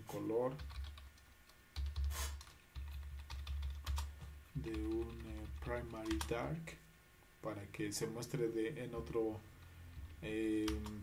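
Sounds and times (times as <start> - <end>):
steady low hum: 0.0 - 11.0
keyboard typing: 0.6 - 6.4, 9.0 - 11.0
short hiss: 2.1 - 2.5.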